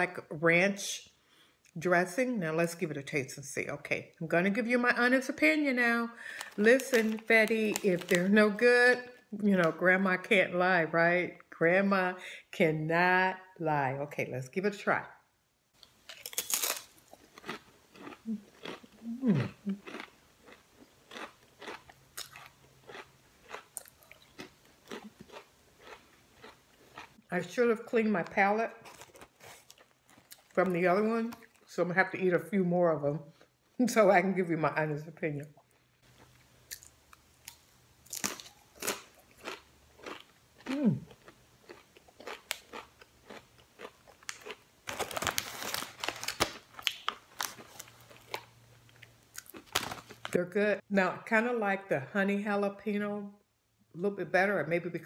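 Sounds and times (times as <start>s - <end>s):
person chewing potato chips: 6.3s - 8.3s, 15.8s - 27.3s, 28.8s - 30.6s, 36.1s - 50.4s.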